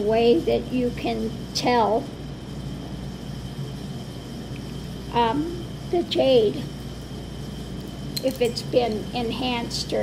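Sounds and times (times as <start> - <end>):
faint high whine: 0.0 - 10.0
low room hum: 0.0 - 10.0.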